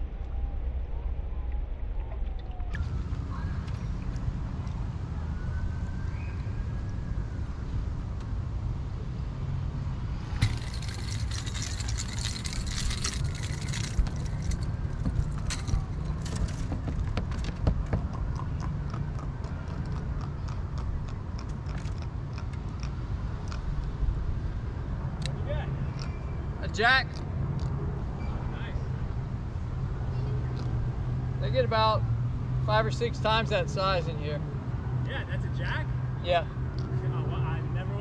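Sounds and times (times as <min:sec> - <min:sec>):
steady low rumble: 0:00.0 - 0:25.3
fish clicking and rattling on deck: 0:10.4 - 0:20.0.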